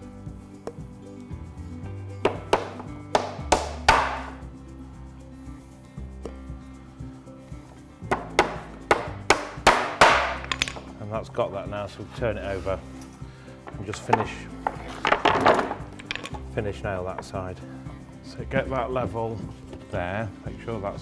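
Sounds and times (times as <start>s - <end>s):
background music: 0.0s - 21.0s
hammer driving nails into wood: 2.2s - 4.4s, 8.1s - 10.8s.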